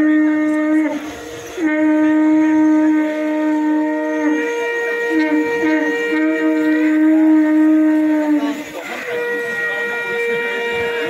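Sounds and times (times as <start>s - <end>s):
conch shells blown: 0.0s - 11.0s.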